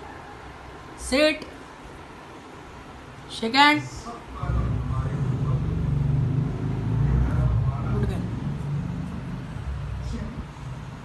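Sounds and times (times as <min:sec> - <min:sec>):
engine running low rumble: 0:04.3 - 0:11.0.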